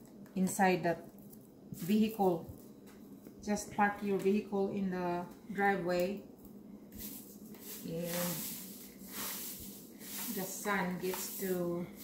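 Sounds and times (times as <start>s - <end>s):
dry leaves rustling in plastic bowl: 1.2s - 2.6s, 7.0s - 12.0s.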